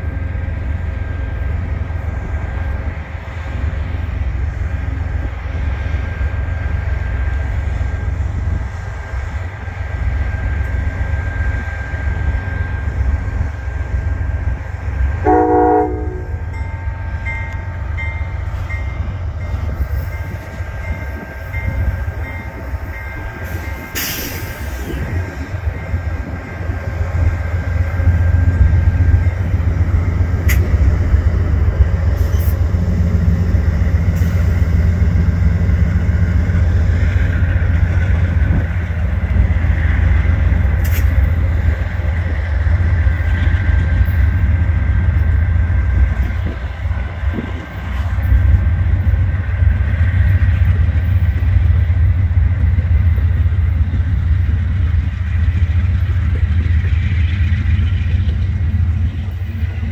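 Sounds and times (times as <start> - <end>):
diesel locomotive engine drone: 0.0 - 59.9
wheel and rail noise: 0.0 - 59.9
train horn blast: 15.2 - 16.6.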